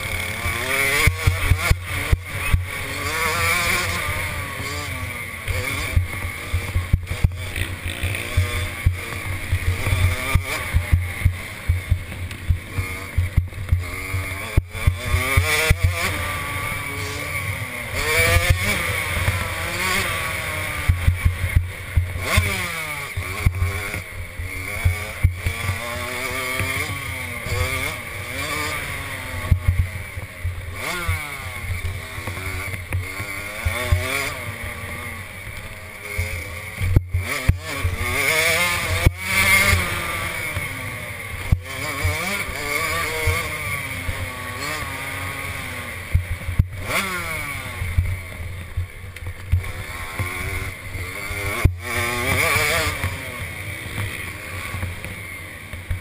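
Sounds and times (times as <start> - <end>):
motorbike engine revving: 0.0 - 56.0.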